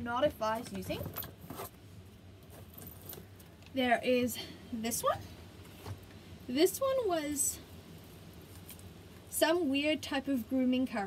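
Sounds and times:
faint rustling: 0:00.4 - 0:04.6.

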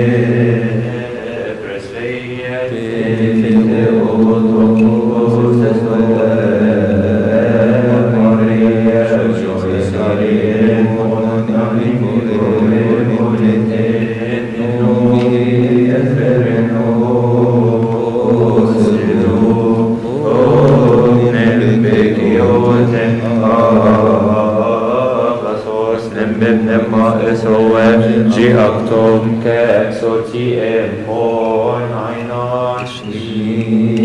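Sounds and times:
voices chanting a hymn: 0:00.0 - 0:34.0.

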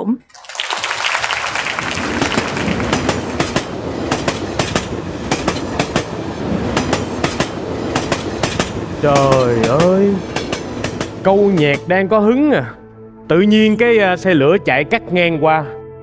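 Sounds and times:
train rumbling rattle: 0:01.6 - 0:11.9
train wheels clacking on rails: 0:02.1 - 0:11.9.

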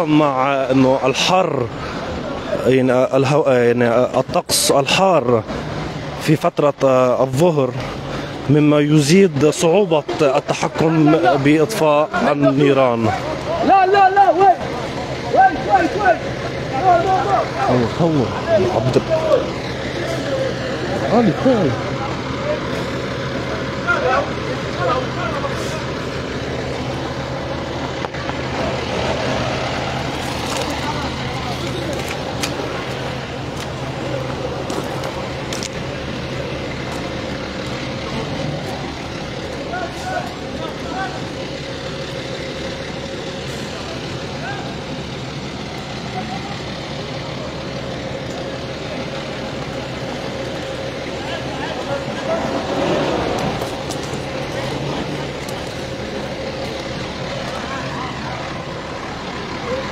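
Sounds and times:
diesel truck engine running: 0:00.0 - 0:59.9
voices in background: 0:00.0 - 0:59.9.

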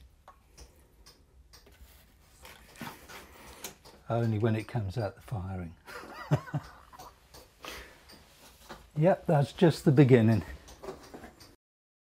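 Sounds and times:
water dripping: 0:05.9 - 0:08.4.

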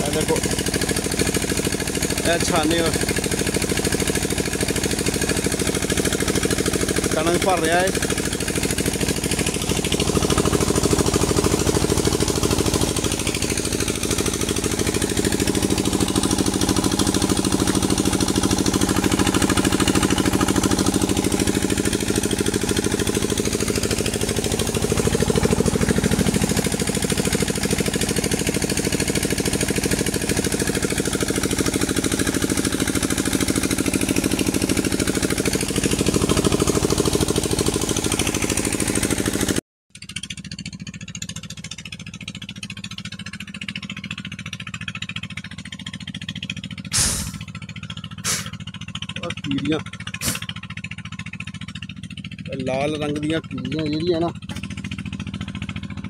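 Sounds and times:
pump engine chugging: 0:00.0 - 0:56.0.

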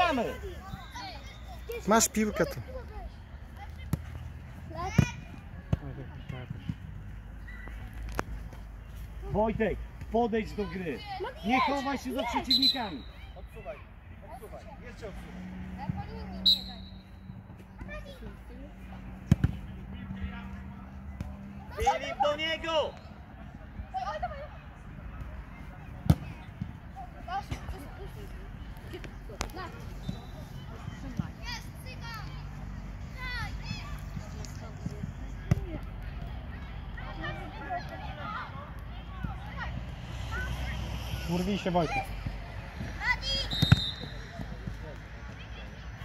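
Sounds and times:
football kick thuds: 0:43.6 - 0:44.5.

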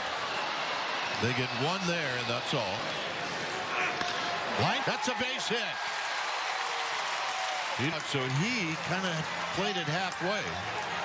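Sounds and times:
ballpark crowd noise: 0:00.0 - 0:11.0.

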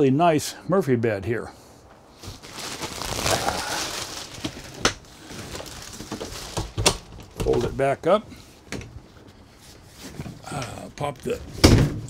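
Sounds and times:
plastic wrapping and bedding rustling: 0:01.9 - 0:12.0.

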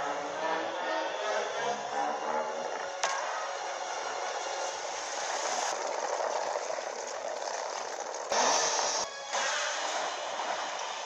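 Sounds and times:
film soundtrack from tv: 0:00.0 - 0:11.0.

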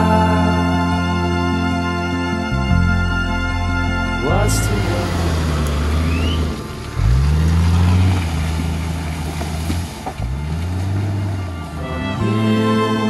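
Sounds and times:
vehicle engine revving hard: 0:04.2 - 0:13.0.

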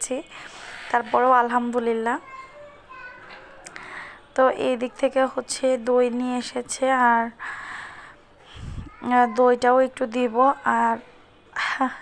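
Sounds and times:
woman speaking: 0:00.0 - 0:00.3, 0:00.9 - 0:02.2, 0:04.4 - 0:07.4
distant children's voices: 0:01.4 - 0:12.0.

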